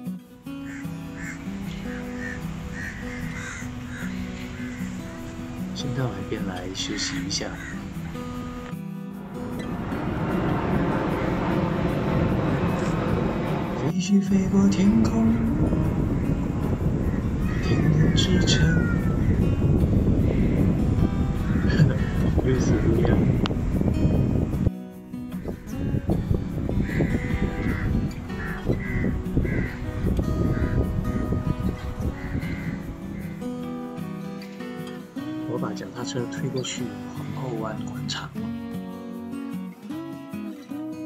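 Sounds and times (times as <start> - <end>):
music: 0.0 - 41.0
crows cawing: 0.4 - 13.9, 15.4 - 23.9, 25.2 - 37.6
jet airliner flying overhead: 7.0 - 24.6.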